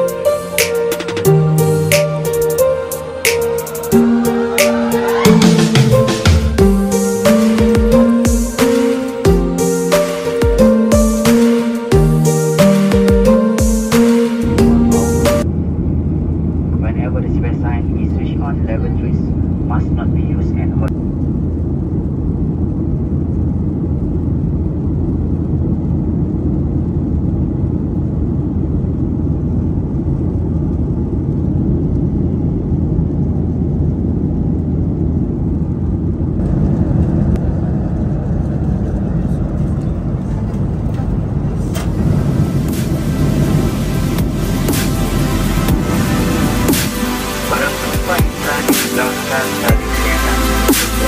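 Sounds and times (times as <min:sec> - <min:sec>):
airliner cabin engine drone: 0:00.0 - 0:51.0.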